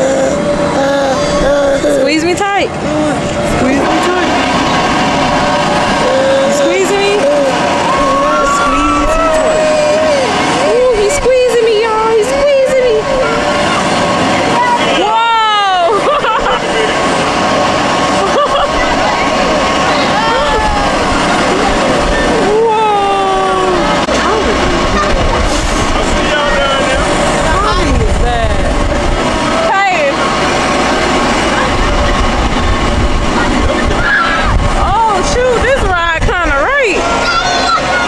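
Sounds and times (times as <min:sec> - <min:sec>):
steady hum: 0:00.0 - 0:38.0
voices calling out: 0:00.0 - 0:38.0
wind rumbling over microphone: 0:17.6 - 0:37.1.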